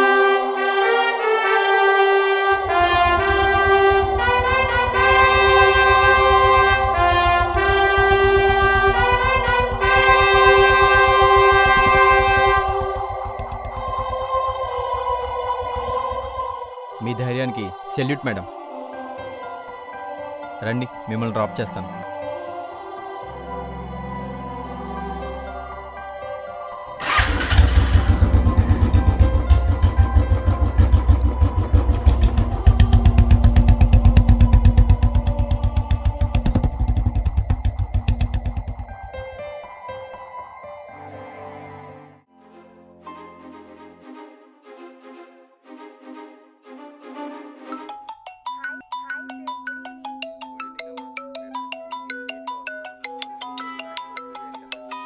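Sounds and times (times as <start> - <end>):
music playing: 0.0 - 32.4, 38.6 - 55.0
motorcycle engine running: 2.6 - 16.7, 27.0 - 39.4
marimba phone ringtone: 47.7 - 55.0.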